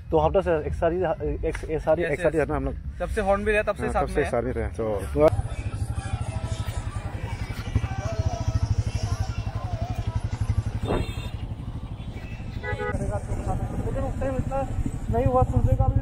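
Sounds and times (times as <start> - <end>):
motorcycle engine running: 5.0 - 16.0.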